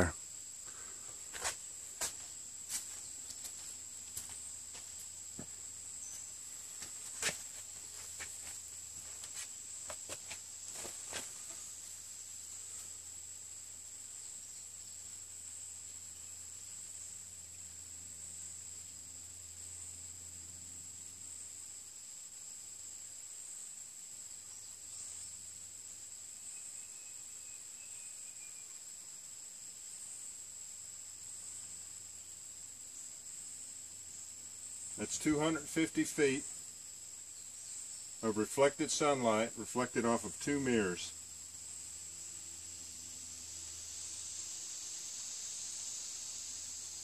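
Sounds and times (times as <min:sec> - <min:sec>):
shrill insect chorus: 0:00.0 - 0:47.0
faint low hum: 0:29.8 - 0:45.0.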